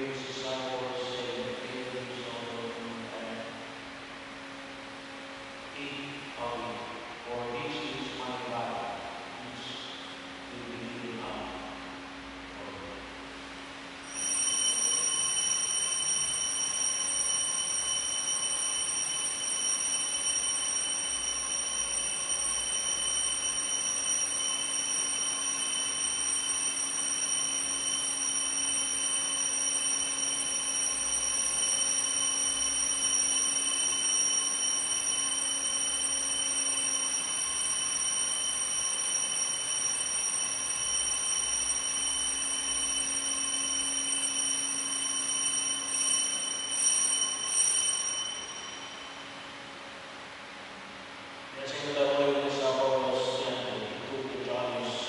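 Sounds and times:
steady electronic tone: 0:13.9 - 0:50.5.

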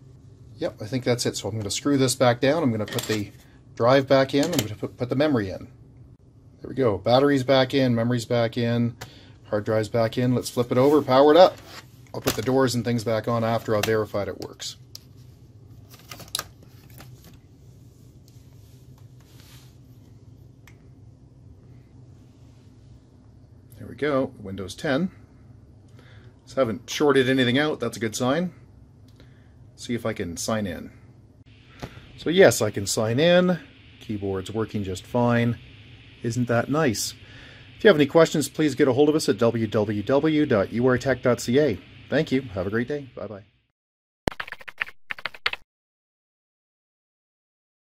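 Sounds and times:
faint low hum: 0:00.0 - 0:43.6.

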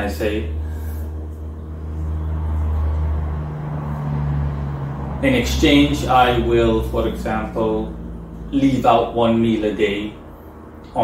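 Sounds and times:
motor hum and rumble: 0:00.0 - 0:11.0.

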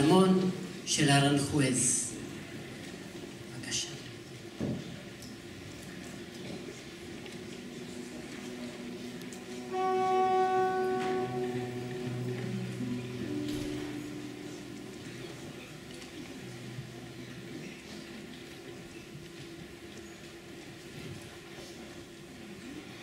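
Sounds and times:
faint stage noise: 0:00.0 - 0:23.0
cello notes: 0:07.0 - 0:17.3
bowed strings holding notes: 0:07.0 - 0:17.6.

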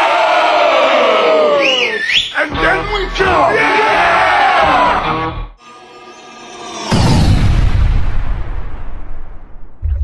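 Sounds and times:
sampled voices shouting together: 0:00.0 - 0:02.1, 0:03.1 - 0:05.1.

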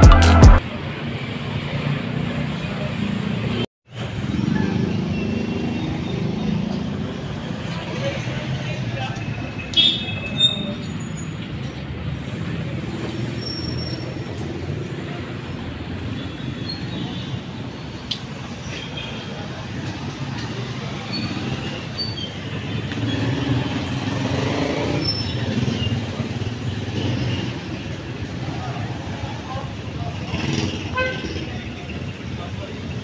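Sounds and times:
faint voices of passersby: 0:00.0 - 0:13.4, 0:14.1 - 0:24.1, 0:25.4 - 0:33.0
traffic noise: 0:00.0 - 0:33.0.

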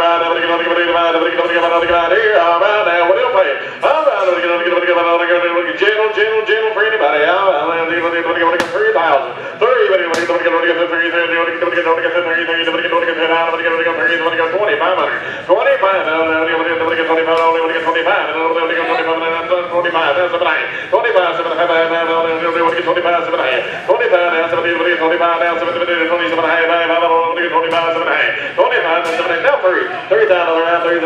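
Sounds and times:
auctioneer chanting bids: 0:00.0 - 0:31.0
auctioneer breathing: 0:09.3 - 0:09.6.

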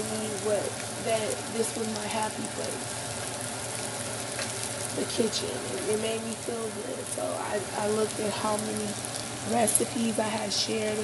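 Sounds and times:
food sizzling in a saucepan: 0:00.0 - 0:11.0.

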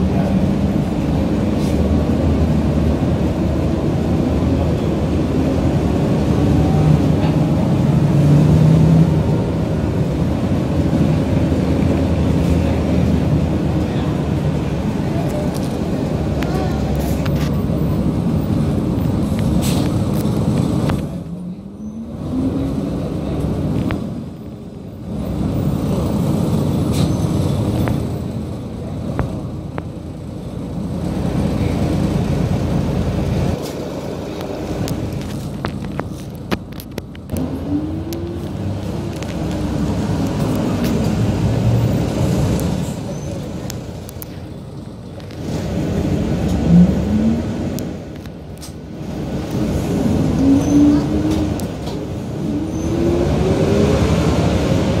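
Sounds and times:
bus engine rumbling: 0:00.0 - 0:55.0
surrounding traffic: 0:00.0 - 0:55.0.

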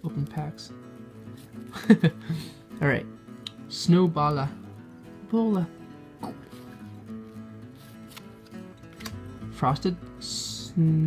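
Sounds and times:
acoustic guitar music: 0:00.0 - 0:11.0
trading cards clicking: 0:07.8 - 0:09.3.

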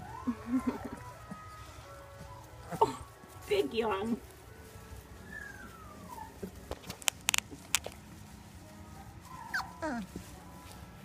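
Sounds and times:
puppy whimpering: 0:05.2 - 0:06.5, 0:09.3 - 0:10.2
sharp clicks: 0:06.8 - 0:08.0.

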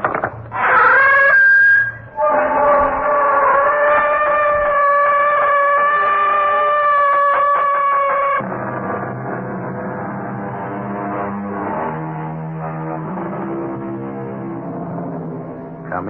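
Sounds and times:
door creaking: 0:00.0 - 0:14.3.

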